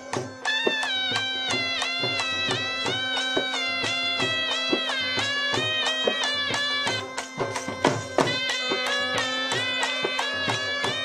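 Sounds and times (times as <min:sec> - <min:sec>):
drums beating: 0:00.0 - 0:11.0
reed pipe melody: 0:00.0 - 0:11.0.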